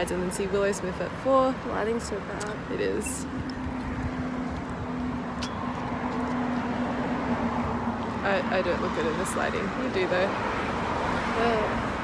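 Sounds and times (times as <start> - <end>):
road rumble: 0.0 - 12.0
vehicle engine humming: 0.0 - 12.0.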